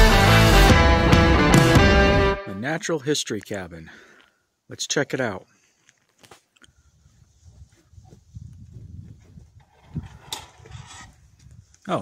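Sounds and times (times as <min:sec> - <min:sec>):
low rumbling on microphone: 0:07.2 - 0:11.7.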